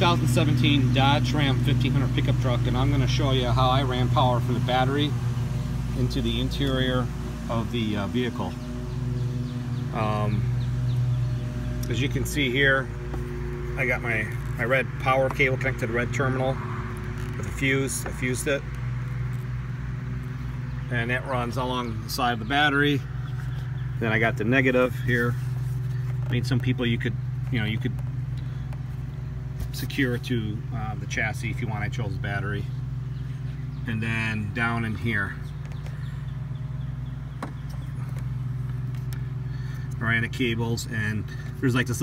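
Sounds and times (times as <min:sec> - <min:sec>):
engine idling: 0:00.0 - 0:42.0
low mechanical hum: 0:00.0 - 0:42.0.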